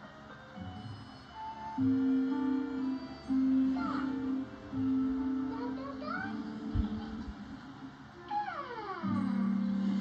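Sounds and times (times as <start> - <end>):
soft background music: 0.0 - 10.0
cartoon baby cooing: 8.2 - 9.5.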